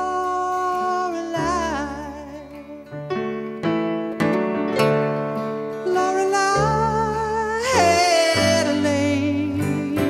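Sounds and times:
man singing slow song: 0.0s - 2.9s, 5.8s - 10.0s
electric piano chords: 1.5s - 10.0s.

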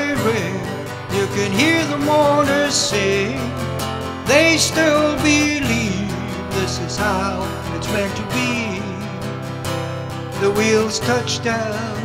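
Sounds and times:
man singing: 0.0s - 9.6s, 10.2s - 12.0s
acoustic guitar strumming: 0.0s - 12.0s.

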